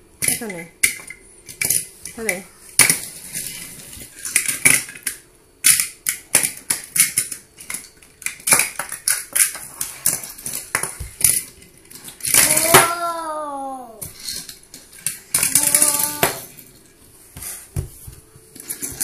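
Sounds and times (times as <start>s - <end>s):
plastic toys clattering on tiles: 0.2s - 17.6s, 18.5s - 19.0s.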